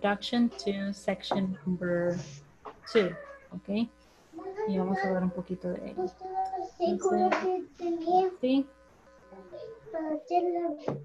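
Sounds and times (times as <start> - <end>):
woman speaking over video call: 0.0 - 4.0, 4.7 - 6.1, 8.4 - 8.7.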